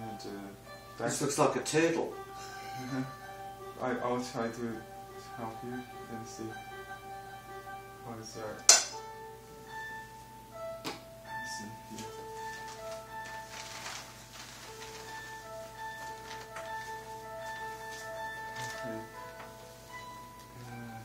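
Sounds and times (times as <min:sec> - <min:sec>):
soft instrumental music: 0:00.0 - 0:21.0.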